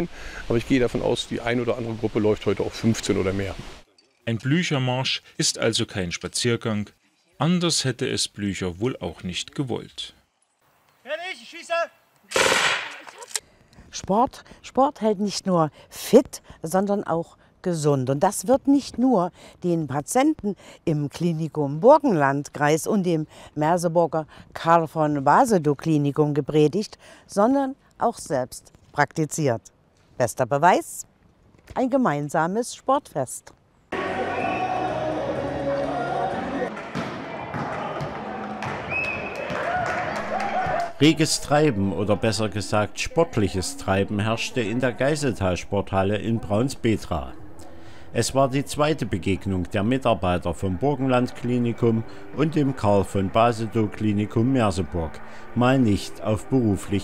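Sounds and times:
machine-gun fire: 12.3s - 13.0s
ball bouncing on hall floor: 36.7s - 40.0s
people chattering: 40.2s - 57.0s.

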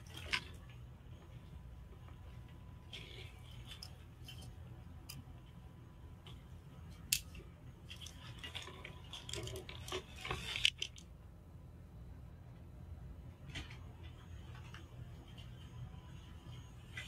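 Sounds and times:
handling clicks and rustles: 0.0s - 11.2s
ventilation hum: 0.0s - 17.0s.

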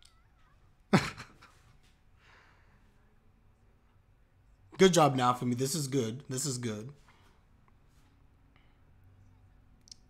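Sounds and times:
man laughing loudly: 0.9s - 1.6s.

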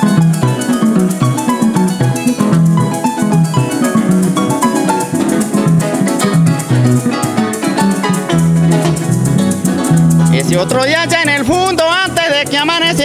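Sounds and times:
harp plucked runs: 0.0s - 11.8s
maracas shaking: 0.0s - 13.0s.

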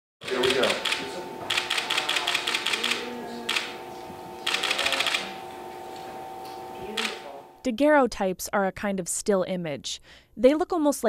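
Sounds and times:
rapid sharp clicks: 0.2s - 3.8s, 4.4s - 5.4s
steady hum: 0.2s - 7.7s.

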